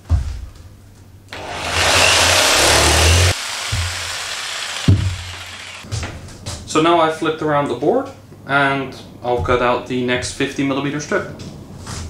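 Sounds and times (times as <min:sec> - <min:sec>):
electric saw cutting plywood: 0:01.3 - 0:05.9.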